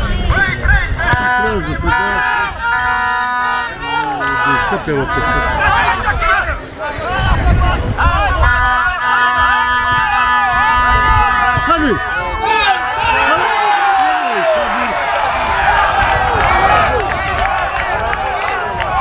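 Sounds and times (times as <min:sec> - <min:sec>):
wind rumble on microphone: 0:00.0 - 0:13.7, 0:14.5 - 0:19.0
men shouting: 0:00.5 - 0:17.4.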